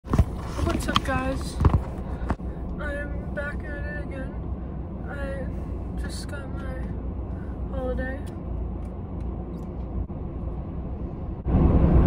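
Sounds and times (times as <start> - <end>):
low rumble inside car: 0.1 - 12.0.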